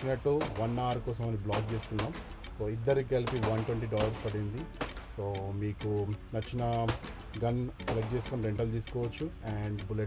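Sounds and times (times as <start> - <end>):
person talking: 0.0 - 10.0
handgun shots: 3.2 - 5.1.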